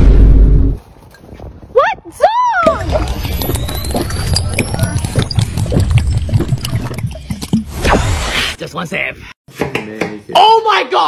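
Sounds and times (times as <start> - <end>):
juice slurped through tube gurgling: 2.9 - 7.8.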